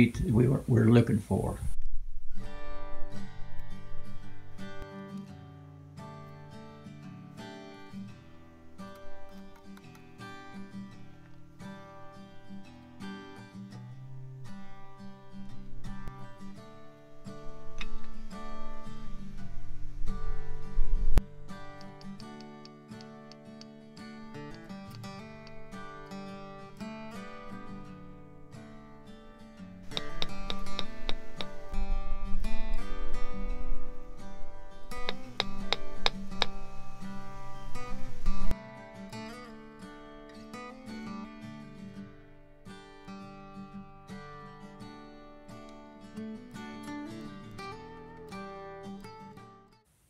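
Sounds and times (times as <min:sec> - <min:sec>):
strummed acoustic guitar music: 0:01.9 - 0:49.8.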